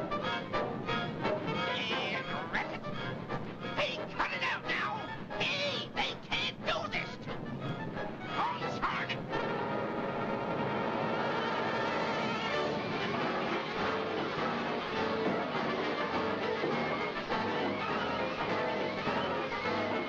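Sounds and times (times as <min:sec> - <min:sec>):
cartoon orchestral music: 0:00.0 - 0:20.0.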